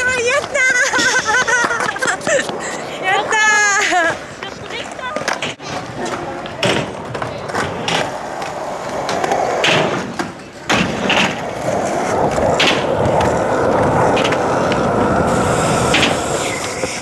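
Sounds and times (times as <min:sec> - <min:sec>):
skateboard clacks: 0:00.0 - 0:17.0
skateboard wheels rolling on concrete: 0:00.0 - 0:17.0.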